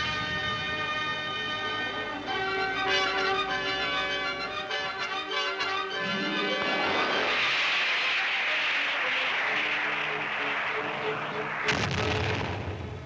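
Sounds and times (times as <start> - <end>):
faint orchestral music: 0.0 - 7.5.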